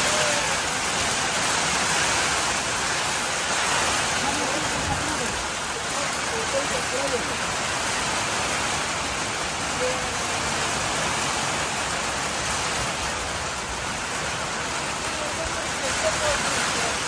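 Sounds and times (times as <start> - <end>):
rain falling on wet paving: 0.0 - 17.0.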